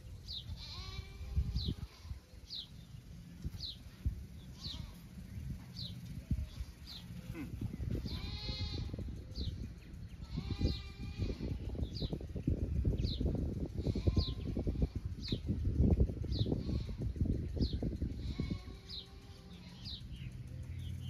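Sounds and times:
bird chirping: 0:00.0 - 0:15.6, 0:17.5 - 0:21.0
livestock bleating: 0:00.5 - 0:02.2, 0:04.5 - 0:05.1, 0:07.3 - 0:09.0, 0:10.2 - 0:11.7, 0:18.2 - 0:19.9.

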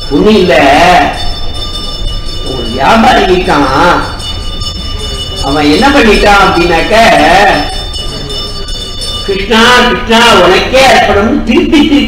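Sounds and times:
faint high-pitched tones: 0:00.0 - 0:10.6
man speaking: 0:02.4 - 0:04.2, 0:05.4 - 0:08.3.

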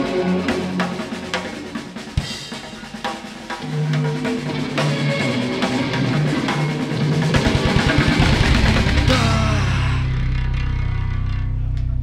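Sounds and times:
sustained bass guitar note: 0:08.2 - 0:12.0.

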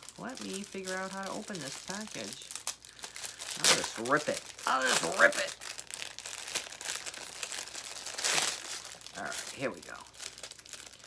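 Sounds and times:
packaging crinkling: 0:00.0 - 0:11.0
packaging ripping: 0:00.0 - 0:11.0.

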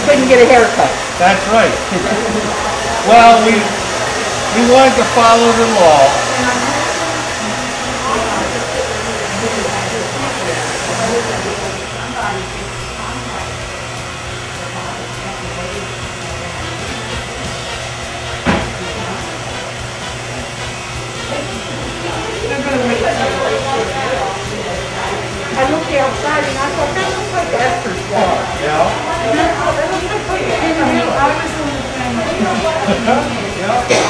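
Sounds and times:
electric hair clippers humming: 0:00.0 - 0:34.0
hair dryer blowing: 0:00.0 - 0:34.0.

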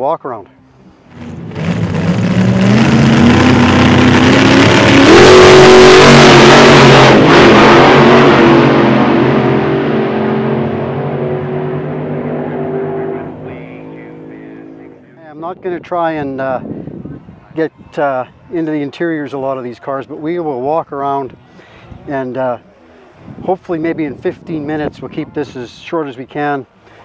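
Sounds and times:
car engine revving: 0:00.9 - 0:15.1.

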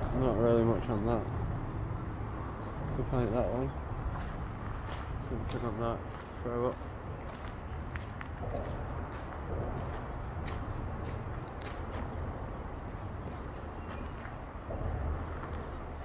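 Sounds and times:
footsteps on rough ground: 0:00.0 - 0:01.6, 0:02.4 - 0:16.0.

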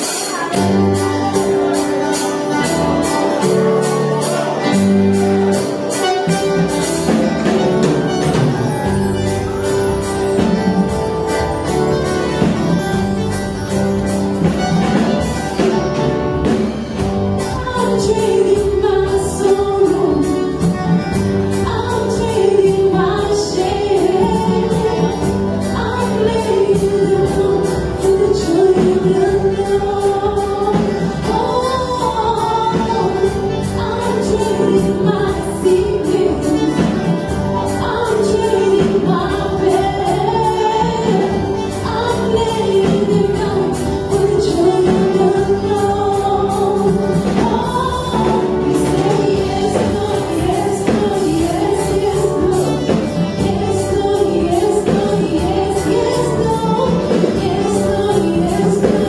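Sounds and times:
backing music with steady beat: 0:00.0 - 0:59.0
person singing gospel song: 0:00.0 - 0:59.0.

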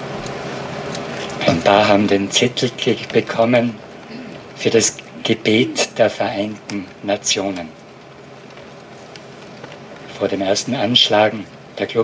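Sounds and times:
open-air ambience hiss: 0:00.0 - 0:12.0.

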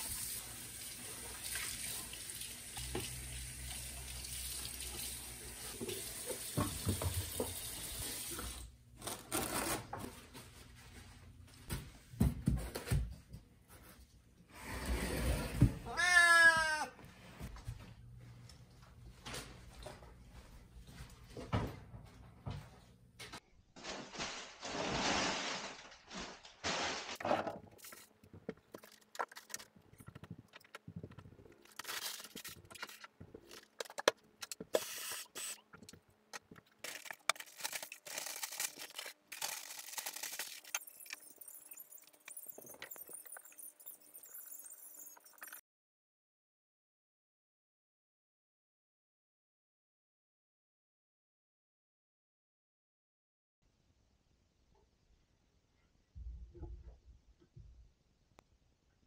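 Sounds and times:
cat meowing: 0:15.9 - 0:17.0
household items clicking and clinking: 0:26.0 - 0:45.6.

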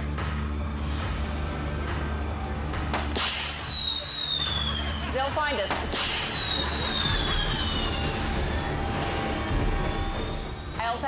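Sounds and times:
flare gun pop: 0:02.9 - 0:04.7, 0:05.7 - 0:08.3
high falling whistle: 0:03.2 - 0:05.0.

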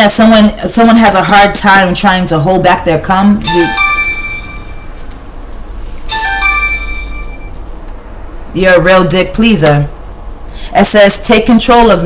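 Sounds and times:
low hum: 0:03.2 - 0:08.9
electronic two-note chime: 0:03.4 - 0:05.0, 0:06.1 - 0:07.6.

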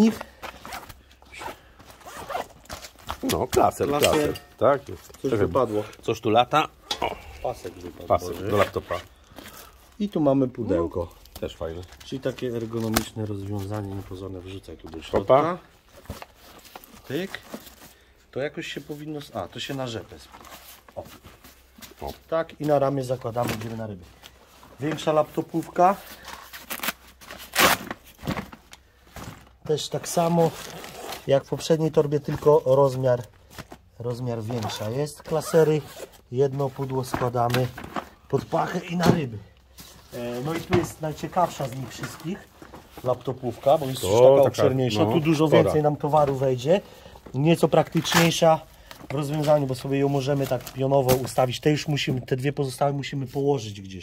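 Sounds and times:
canvas bag rustling: 0:00.0 - 0:05.9, 0:07.4 - 0:10.1, 0:34.0 - 0:39.0
zipper being pulled: 0:01.4 - 0:02.6, 0:08.2 - 0:09.1.

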